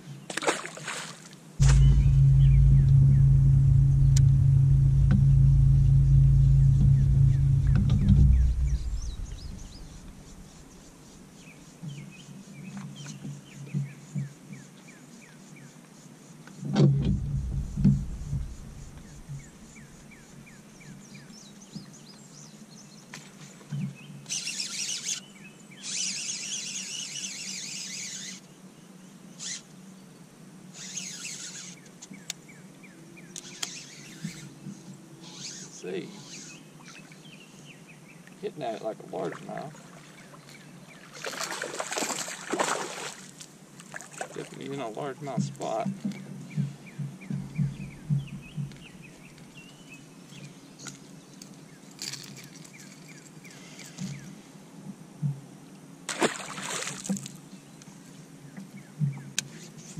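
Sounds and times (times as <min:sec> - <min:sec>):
electric trolling motor humming: 0:01.6 - 0:10.9, 0:17.0 - 0:20.0
birds chirping: 0:01.6 - 0:11.6, 0:17.2 - 0:21.4, 0:44.6 - 0:51.9.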